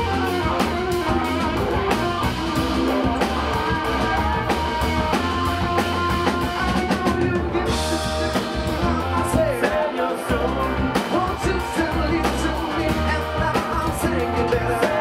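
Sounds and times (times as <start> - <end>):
drum kit: 0.0 - 15.0
electric bass: 0.0 - 15.0
electric guitar: 0.0 - 15.0
keyboard: 0.0 - 15.0
man singing: 0.0 - 15.0.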